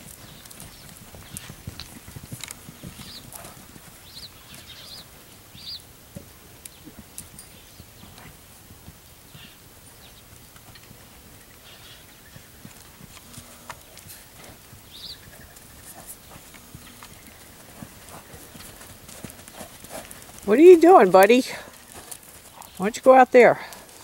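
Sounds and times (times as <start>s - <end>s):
hoofbeats on dirt: 0.0s - 24.0s.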